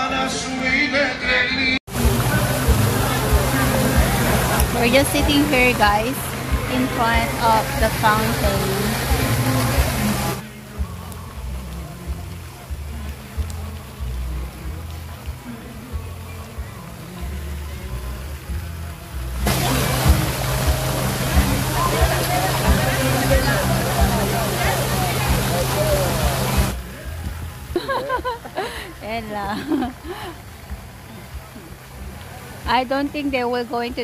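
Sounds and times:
voices: 0.0s - 34.0s
music with moving bass line: 1.9s - 33.4s
fountain water splashing: 1.9s - 34.0s.

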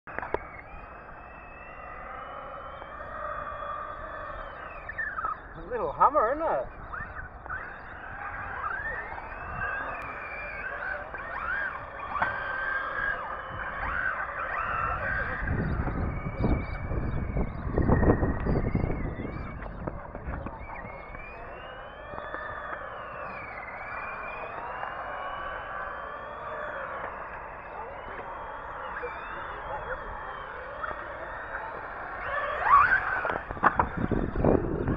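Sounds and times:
toy car motors whining: 0.1s - 34.9s
wind rumble on microphone: 0.1s - 34.9s.

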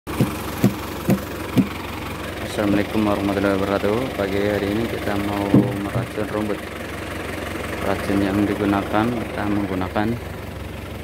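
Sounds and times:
regular thumping: 0.1s - 1.8s, 5.4s - 6.4s
tractor engine idling: 0.1s - 11.0s.

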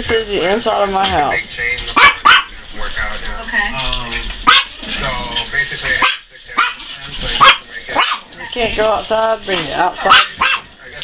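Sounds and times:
dogs barking: 1.9s - 2.8s, 4.3s - 8.8s, 9.5s - 11.0s.

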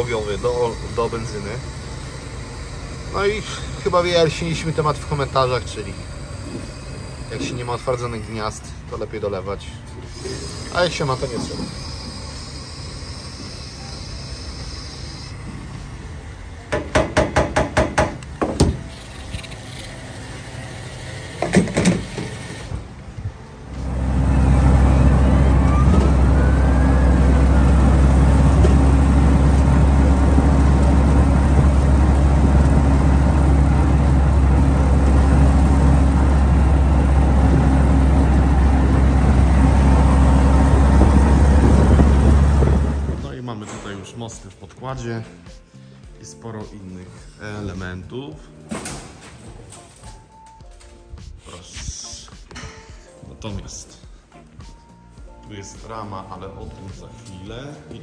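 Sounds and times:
jeep engine running loudly: 0.0s - 17.2s, 19.4s - 43.3s.

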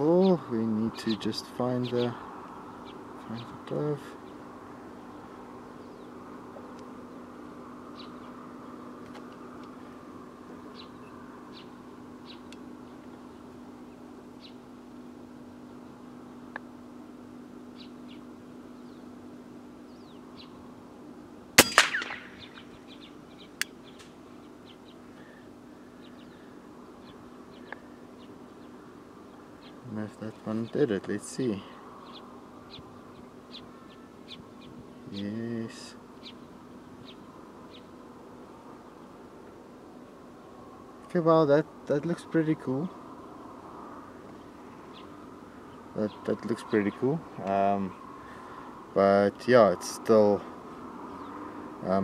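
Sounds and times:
steady low hum: 0.0s - 52.0s
bird chirps: 10.6s - 14.6s, 17.7s - 19.2s, 19.8s - 20.6s, 21.7s - 29.9s, 31.6s - 35.2s, 36.2s - 37.9s
air rifle shot: 21.6s - 22.7s.

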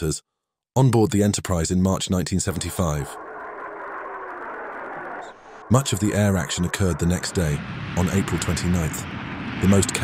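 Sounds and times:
muffled jet engine rush: 2.3s - 10.0s.

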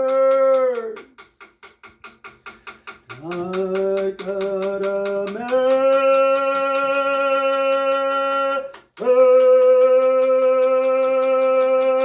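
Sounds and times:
frame hand drum beat: 0.0s - 12.0s.

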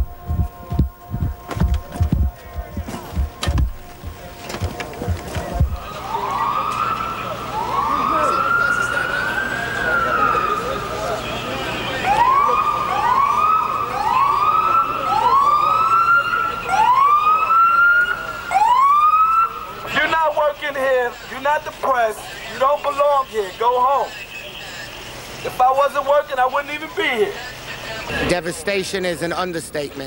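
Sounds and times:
emergency vehicle siren: 0.0s - 28.3s.

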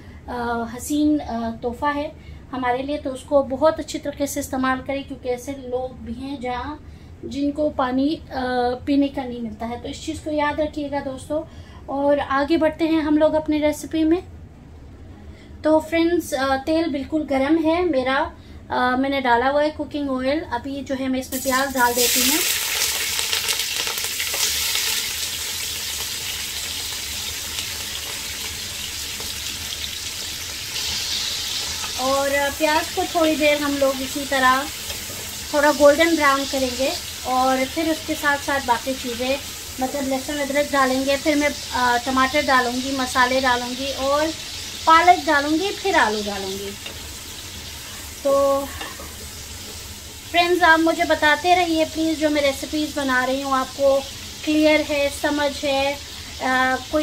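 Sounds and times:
onions sizzling in oil: 21.3s - 57.0s.

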